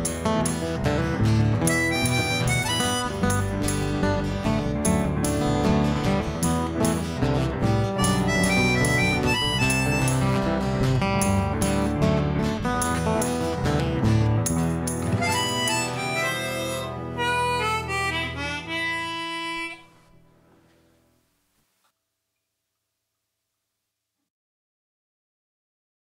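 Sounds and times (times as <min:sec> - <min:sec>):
strummed acoustic guitar: 0:00.0 - 0:18.8
chromatic harmonica melody: 0:00.0 - 0:20.7
bass: 0:00.0 - 0:21.2.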